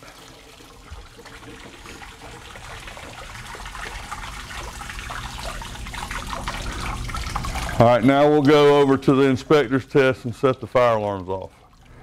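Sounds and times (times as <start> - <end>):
water rushing through drain pipe: 0.0 - 12.0.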